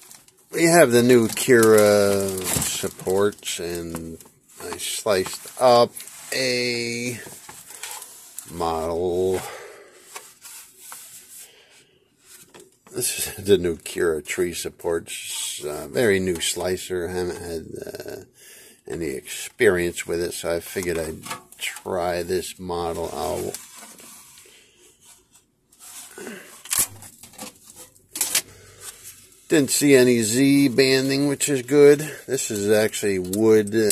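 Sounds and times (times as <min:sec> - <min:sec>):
plastic print handling scrapes: 0:00.1 - 0:09.4, 0:22.8 - 0:33.9.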